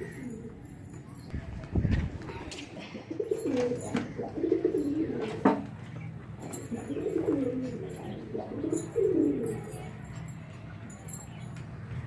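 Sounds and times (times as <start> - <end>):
pigeon cooing: 0.0 - 0.7, 2.6 - 5.7, 6.4 - 10.0.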